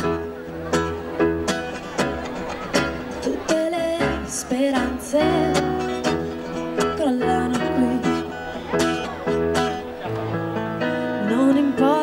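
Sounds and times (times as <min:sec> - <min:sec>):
acoustic guitar strumming: 0:00.0 - 0:12.0
woman singing: 0:03.3 - 0:06.0, 0:06.8 - 0:08.3, 0:11.2 - 0:12.0.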